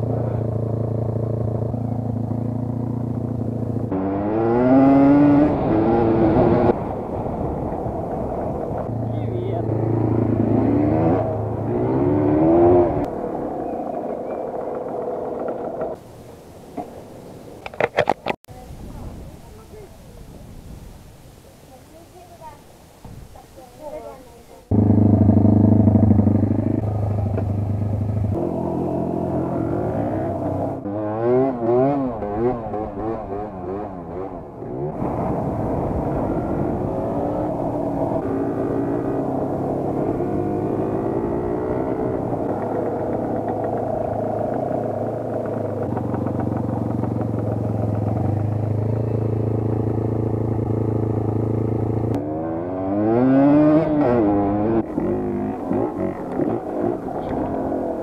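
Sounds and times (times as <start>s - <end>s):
motorcycle engine revving: 0.0s - 16.0s, 24.7s - 58.0s.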